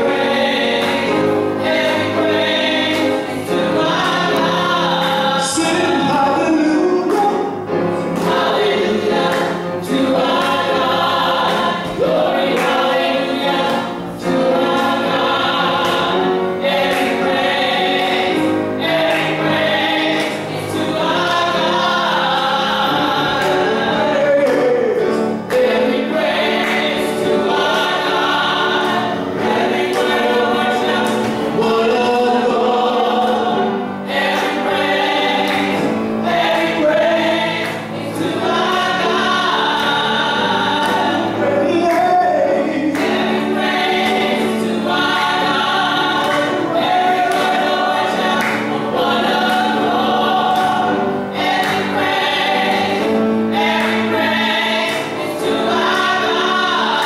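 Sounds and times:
group singing gospel: 0.0s - 57.0s.

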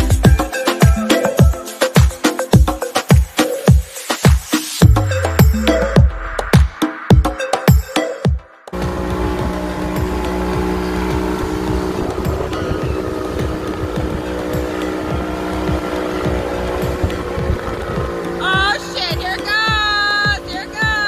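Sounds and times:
motorboat engine running: 4.8s - 6.3s, 8.7s - 21.0s
wind and water rushing: 8.8s - 21.0s.

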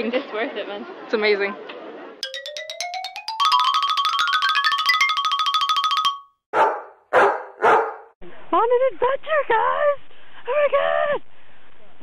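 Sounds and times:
dog barking: 6.5s - 8.1s.

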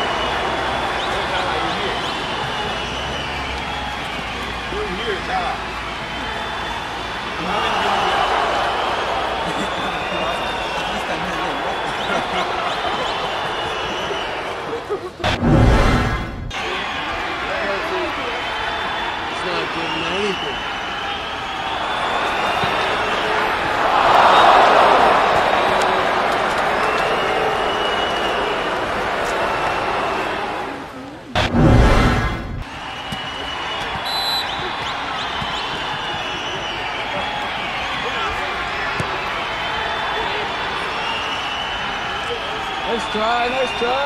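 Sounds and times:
outdoor soccer game noise: 0.0s - 44.0s
players shouting: 0.0s - 44.0s
loud low rumble: 15.3s - 16.6s, 31.4s - 32.7s.

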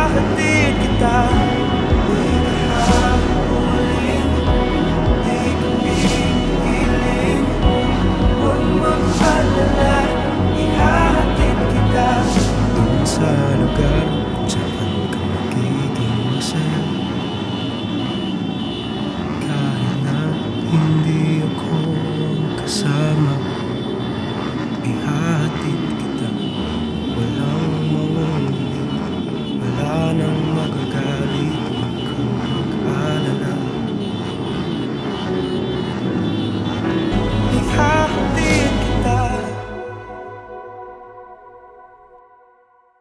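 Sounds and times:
people talking: 0.0s - 17.1s, 19.4s - 23.6s, 24.8s - 26.6s, 27.2s - 29.0s, 29.6s - 34.0s, 37.1s - 39.8s
people's voices: 0.0s - 17.7s, 19.4s - 24.0s, 24.8s - 40.2s.

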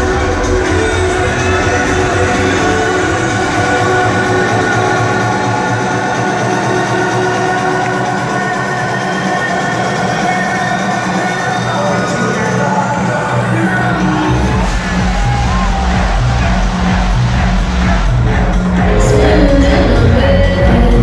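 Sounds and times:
electronic dance music: 0.0s - 21.0s
sustained synth chords: 13.0s - 21.0s.

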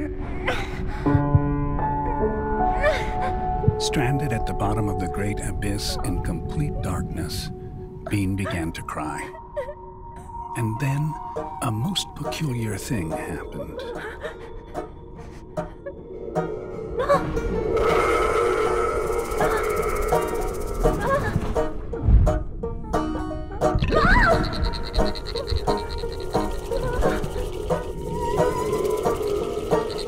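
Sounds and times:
girl sobbing: 0.0s - 1.1s, 2.1s - 3.5s, 8.4s - 10.3s, 13.7s - 14.8s, 17.0s - 17.4s
slow score music: 0.0s - 30.0s
girl gasping and whimpering: 0.3s - 1.2s, 2.7s - 3.4s.

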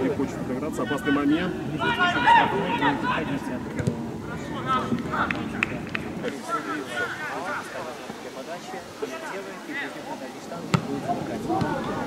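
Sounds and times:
faint crowd voices: 0.0s - 12.0s
man calling out: 0.8s - 3.4s.

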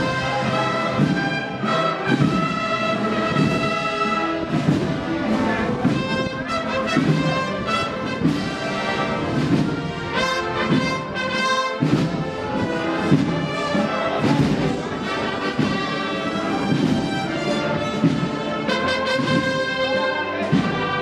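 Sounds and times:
wind band playing a march: 0.0s - 21.0s.

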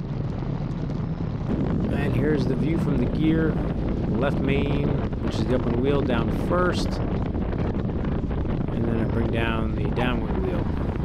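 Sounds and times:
plane engine rumbling: 0.0s - 11.0s
wind on microphone: 0.0s - 11.0s.

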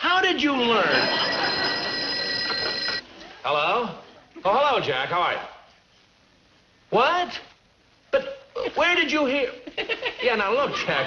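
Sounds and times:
desk telephone bell ringing: 0.8s - 3.0s.

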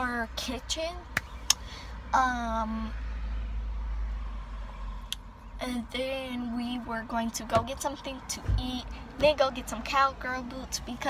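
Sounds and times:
low vehicle rumble inside car: 0.0s - 11.0s.

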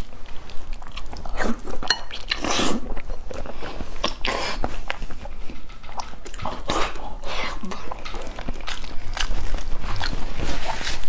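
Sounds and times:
man slurping and chewing: 1.0s - 5.3s.

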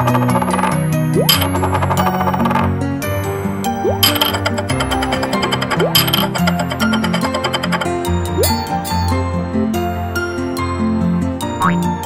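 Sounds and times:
children's background music: 7.7s - 12.0s.

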